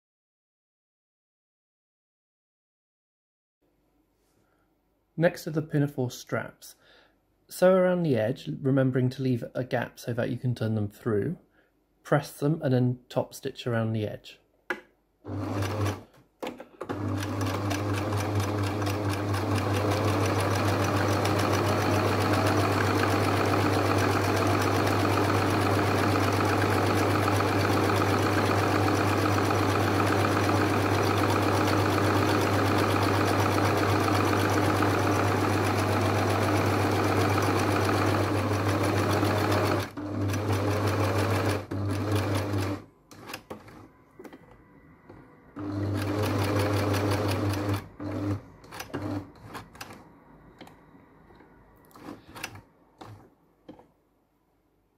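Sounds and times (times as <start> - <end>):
sewing machine stitching: 15.3 - 43.8, 45.6 - 50.0, 51.9 - 53.8.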